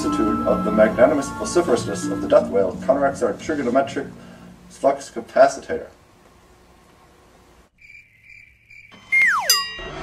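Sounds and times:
music: 0.0s - 4.8s, 9.0s - 10.0s
comic cricket chirping effect: 7.7s - 9.6s
falling whistle comedy effect: 7.8s - 9.8s.

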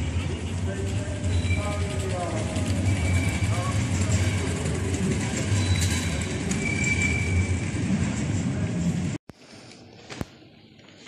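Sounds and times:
traffic rumble: 0.0s - 9.2s
indistinct voices of passers-by: 0.0s - 10.9s.

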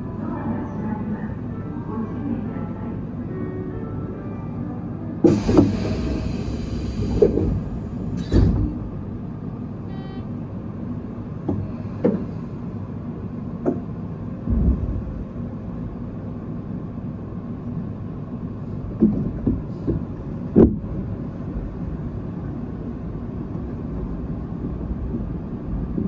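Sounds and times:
train wheels rumbling on rail: 5.3s - 9.5s, 11.1s - 26.0s.

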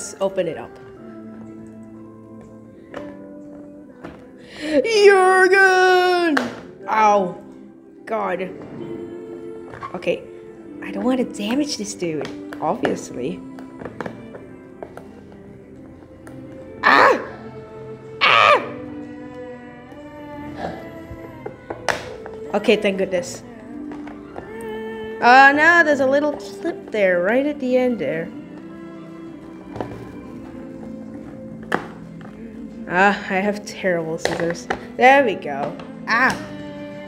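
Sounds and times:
background music with held notes: 0.0s - 37.0s
person exclaiming startled: 16.8s - 17.3s, 18.2s - 18.8s.

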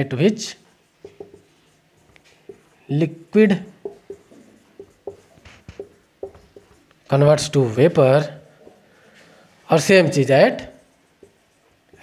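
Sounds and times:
marker pen writing on whiteboard: 0.0s - 12.0s.

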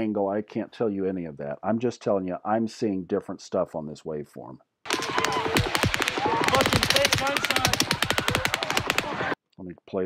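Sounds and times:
crowd shouting and screaming: 4.9s - 9.4s
rapid automatic gunfire: 4.9s - 9.4s.

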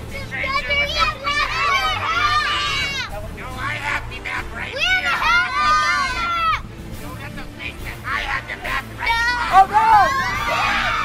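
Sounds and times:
children shouting and yelling: 0.0s - 3.2s, 4.6s - 6.7s, 8.9s - 11.0s.

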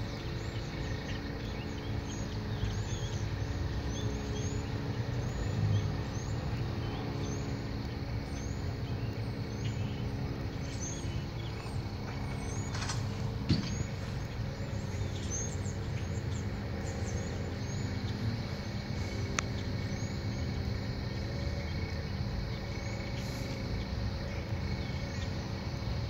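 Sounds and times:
diesel locomotive engines droning: 0.0s - 26.0s
small birds chirping: 0.0s - 26.0s.

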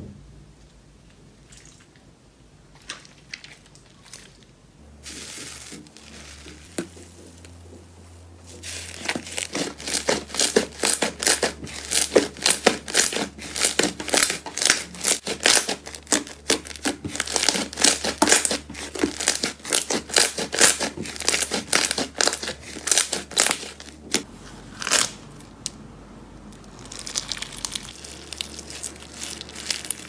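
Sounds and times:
slime popping and crackling: 8.6s - 24.2s, 26.6s - 30.0s.

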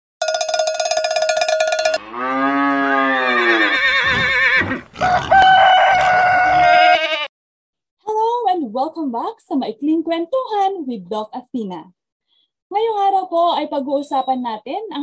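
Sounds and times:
cowbell clanking: 0.2s - 2.2s
cattle mooing: 2.0s - 5.4s.

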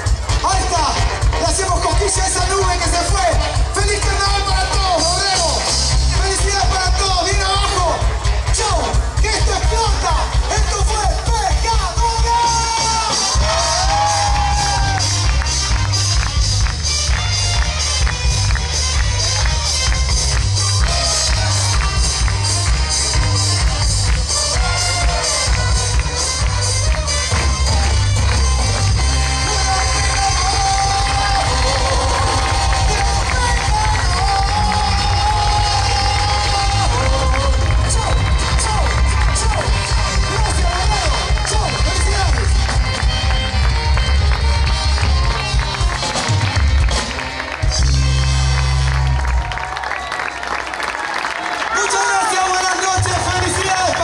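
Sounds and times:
live band music with bass beat: 0.0s - 49.8s
crowd cheering: 0.0s - 54.0s.

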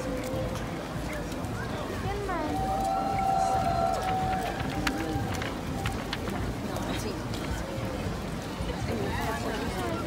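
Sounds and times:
marching boots on wet pavement: 0.0s - 10.0s.

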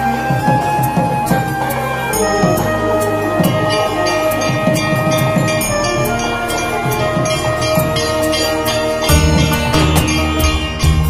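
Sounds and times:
clanging strikes: 0.5s - 11.0s
metal bells ringing: 1.7s - 11.0s.

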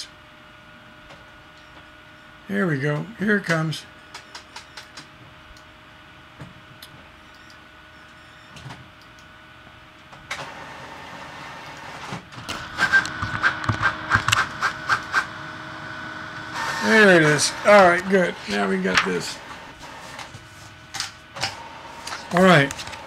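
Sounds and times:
printer whine: 7.2s - 8.8s, 10.3s - 23.0s
printer mechanical strokes: 10.3s - 23.0s
printer motor whirring: 10.3s - 23.0s.

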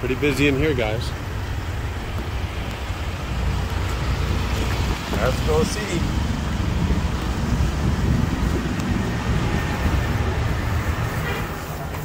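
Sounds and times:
road traffic rumble: 0.0s - 12.0s.

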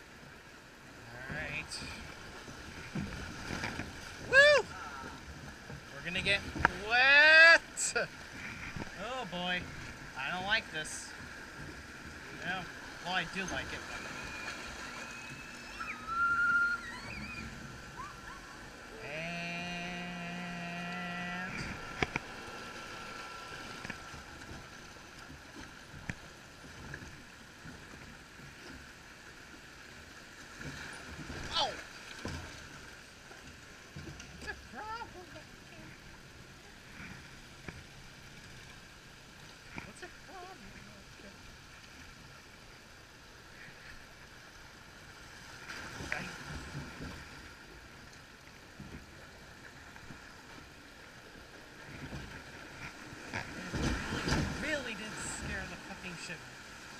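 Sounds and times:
water rushing and sloshing: 0.0s - 56.9s.

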